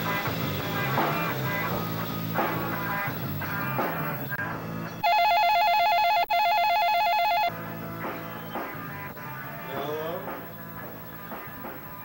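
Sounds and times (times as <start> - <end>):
rock guitar music: 0.0 - 5.3, 7.2 - 12.0
electronic telephone ringer trilling: 5.0 - 7.5.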